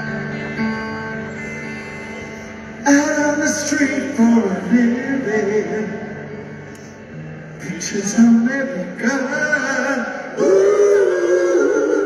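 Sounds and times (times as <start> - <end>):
faint crowd noise: 0.0 - 12.0.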